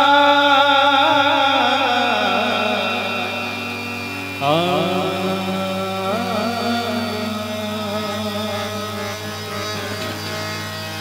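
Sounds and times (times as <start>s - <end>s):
harmonium chord: 0.0s - 11.0s
man singing devotional melody: 0.0s - 11.0s.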